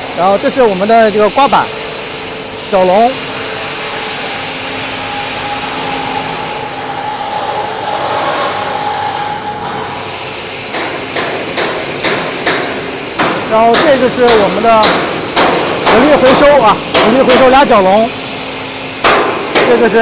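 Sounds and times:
workshop machinery hum: 0.0 - 20.0
hammer striking: 10.7 - 17.6, 19.0 - 19.9.

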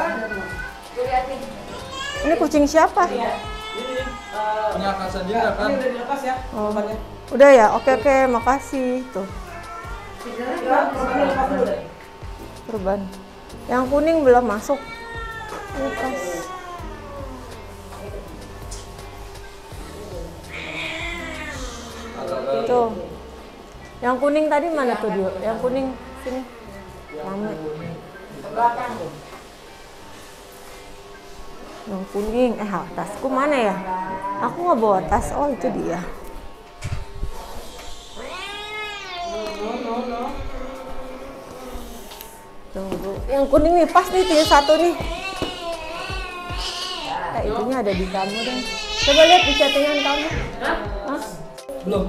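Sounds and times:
background music: 0.0 - 28.2, 42.8 - 52.0
cat meowing long: 20.5 - 22.1.

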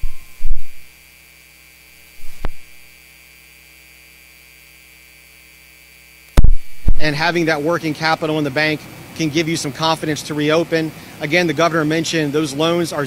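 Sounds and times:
thump on microphone: 0.0 - 0.9, 2.2 - 2.8, 6.4 - 7.1
electrical mains hum: 0.0 - 13.0.

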